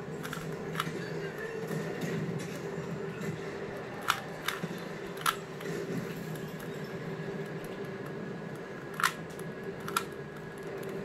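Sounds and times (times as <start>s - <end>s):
plastic cube clicks: 0.2s - 1.0s, 9.8s - 10.2s.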